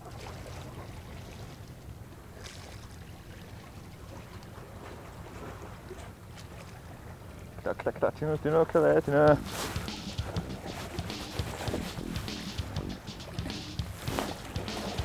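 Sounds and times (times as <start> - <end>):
sea water: 0.0 - 15.0
wind: 0.0 - 15.0.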